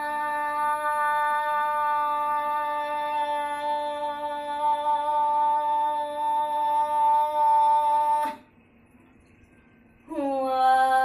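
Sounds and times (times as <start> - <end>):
woman singing a long note: 0.0 - 8.5, 10.1 - 11.0.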